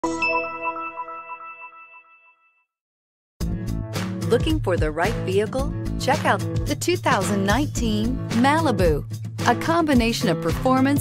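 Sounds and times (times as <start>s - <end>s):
bright logo chime: 0.0s - 2.7s.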